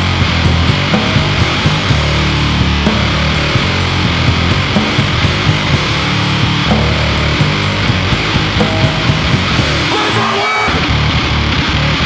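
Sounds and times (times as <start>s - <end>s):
pounding drums: 0.0s - 10.9s
distorted guitar: 0.0s - 12.0s
fast loud metal band: 0.0s - 12.0s.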